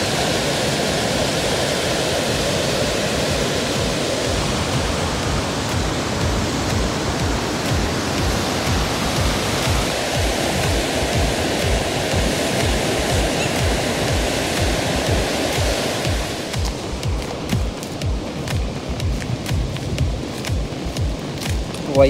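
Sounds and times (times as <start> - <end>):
water rushing over weir: 0.0 - 22.0.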